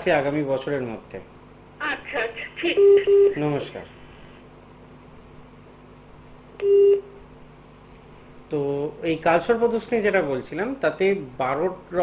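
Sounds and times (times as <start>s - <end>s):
faint phone line hum: 1.8s - 4.4s, 6.6s - 7.3s
low-pitched telephone beep: 2.8s - 3.4s, 6.6s - 7.2s.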